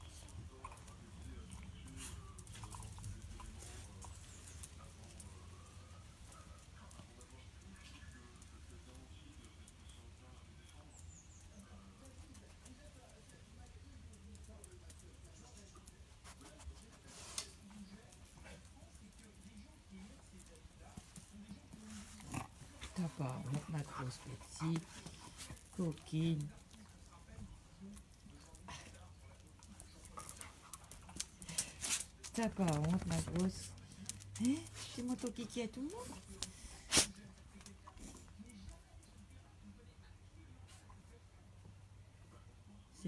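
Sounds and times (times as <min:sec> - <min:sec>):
clicks of paws and claws on tiles: 0:10.6 - 0:23.0, 0:26.4 - 0:39.2
dogs scuffling: 0:11.0 - 0:38.9.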